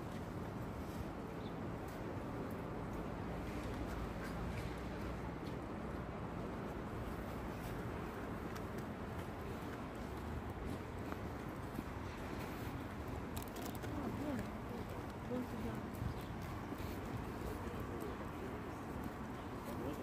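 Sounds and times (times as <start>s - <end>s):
low city rumble: 0.0s - 20.0s.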